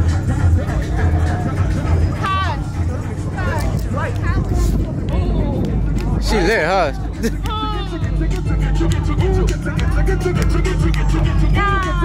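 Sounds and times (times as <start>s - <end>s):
loud music with heavy bass: 0.0s - 12.0s
people calling out and whooping: 0.4s - 10.4s, 11.1s - 12.0s.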